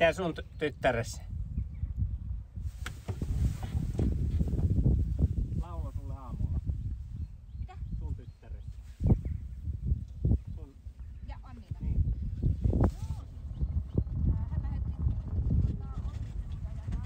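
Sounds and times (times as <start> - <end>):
wind rumble on microphone: 0.0 - 17.0
microphone handling noise: 1.4 - 7.4, 8.6 - 17.0.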